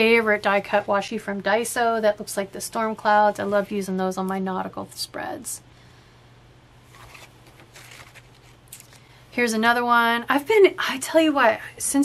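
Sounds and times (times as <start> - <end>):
paper page turning: 6.9 - 9.0.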